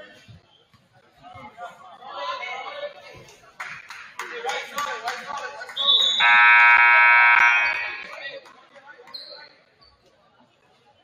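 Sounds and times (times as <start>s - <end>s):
scoreboard horn blast: 6.2s - 8.1s.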